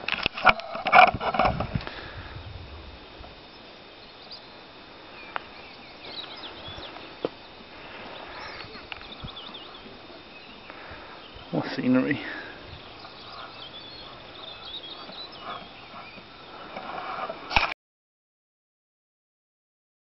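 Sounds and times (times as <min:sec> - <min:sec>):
sharp clicks and rustles: 0:00.0 - 0:02.0
low steady background: 0:00.0 - 0:17.6
faint high bird chirps: 0:03.5 - 0:04.5, 0:05.1 - 0:07.2, 0:08.0 - 0:16.7.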